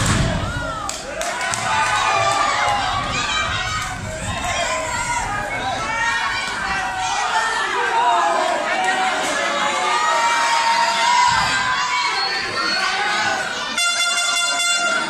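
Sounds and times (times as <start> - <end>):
crowd shouting and cheering: 0.0 - 15.0
air horn blast: 13.7 - 15.0.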